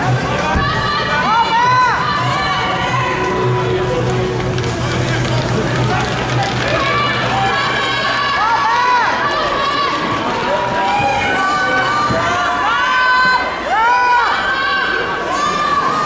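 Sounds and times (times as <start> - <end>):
crowd of fans shouting: 0.0 - 4.5, 5.7 - 16.0.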